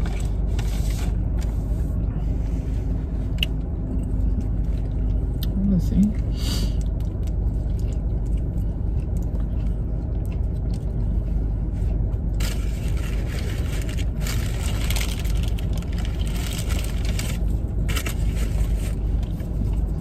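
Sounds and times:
car cabin low rumble: 0:00.0 - 0:20.0
paper wrapper crinkling: 0:12.3 - 0:20.0.

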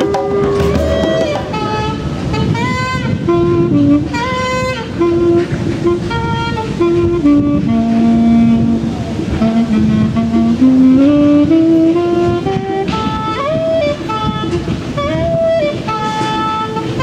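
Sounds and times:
solo saxophone melody: 0:00.0 - 0:17.0.

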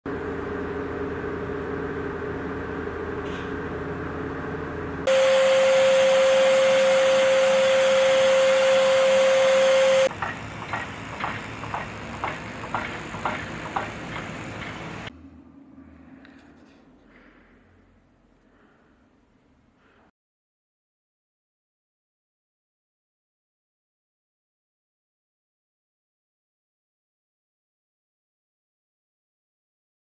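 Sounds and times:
machine hum: 0:00.1 - 0:18.9
sieve analyzer suction rushing whine: 0:04.8 - 0:15.1.

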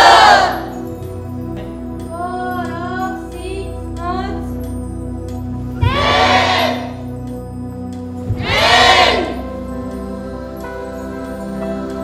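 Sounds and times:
group shouting in unison: 0:00.0 - 0:00.7, 0:05.8 - 0:07.0, 0:08.3 - 0:09.4
background music: 0:00.0 - 0:12.0.

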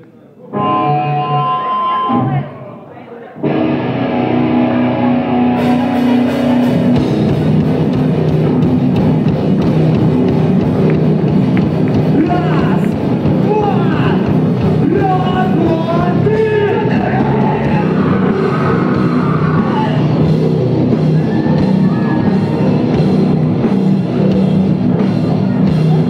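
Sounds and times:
distorted electric guitar chords: 0:00.5 - 0:02.6, 0:03.4 - 0:26.0
live rock band playing: 0:00.5 - 0:02.6, 0:03.4 - 0:26.0
drums and cymbals: 0:05.6 - 0:26.0.

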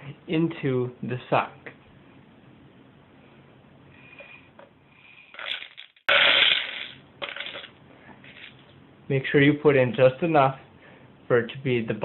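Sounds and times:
popcorn kernels rattling: 0:05.3 - 0:07.7.

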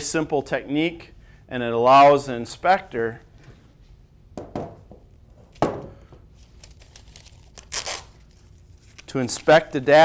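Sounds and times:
paper tearing: 0:06.6 - 0:09.9.

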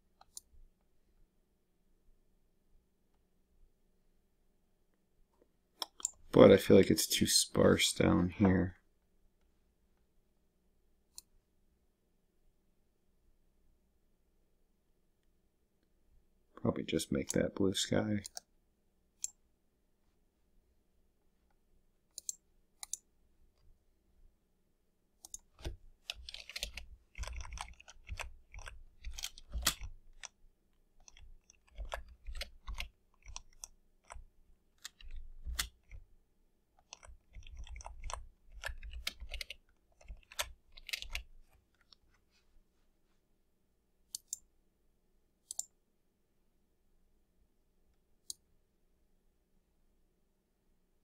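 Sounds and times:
mouse clicks: 0:00.2 - 0:00.5, 0:05.8 - 0:06.2, 0:19.2 - 0:19.4, 0:22.1 - 0:23.1, 0:25.2 - 0:30.4, 0:44.1 - 0:44.5, 0:45.4 - 0:45.8
keyboard typing: 0:25.2 - 0:30.4, 0:31.0 - 0:36.1, 0:36.8 - 0:42.0.

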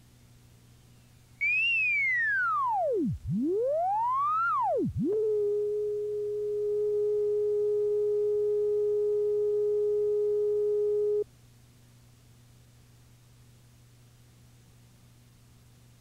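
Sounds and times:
faint tape hiss and hum: 0:00.0 - 0:16.0
steady electronic tone: 0:02.2 - 0:11.2.

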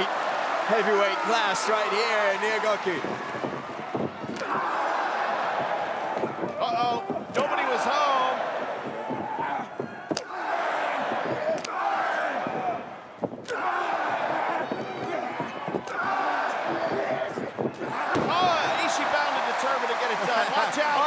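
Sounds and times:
crowd cheering and shouting: 0:00.0 - 0:21.0.

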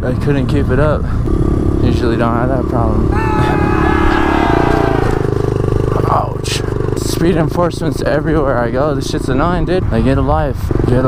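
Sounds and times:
small motorcycle engine running: 0:00.2 - 0:11.0.

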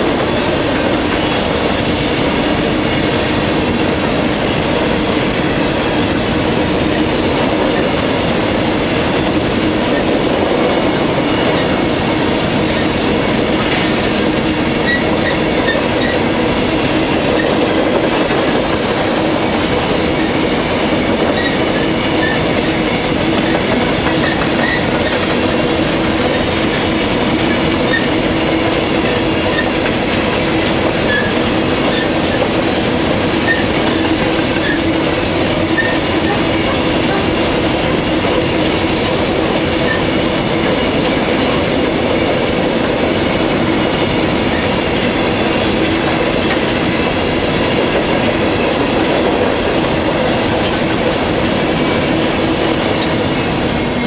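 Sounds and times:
clickety-clack over rail joints: 0:00.0 - 0:54.0
train wheels rumbling on rail: 0:00.0 - 0:54.0.

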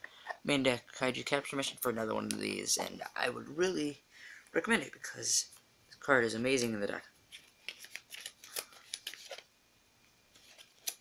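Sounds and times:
trading cards clicking and rustling: 0:07.3 - 0:09.5, 0:10.4 - 0:11.0.

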